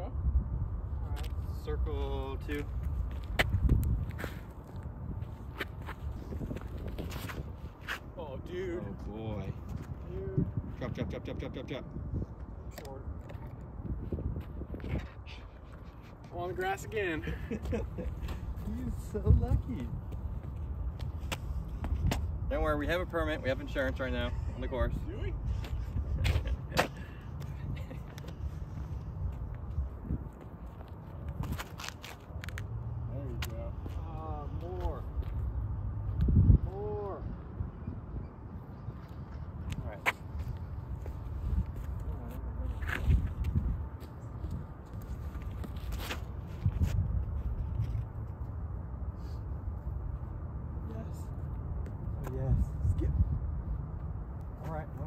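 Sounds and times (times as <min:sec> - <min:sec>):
wind rumble on microphone: 0:00.0 - 0:55.0
person laughing or calling: 0:17.2 - 0:18.4, 0:24.0 - 0:28.3.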